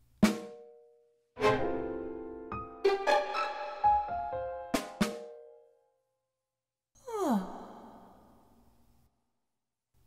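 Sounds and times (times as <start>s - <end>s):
person sighing: 7.0s - 8.7s.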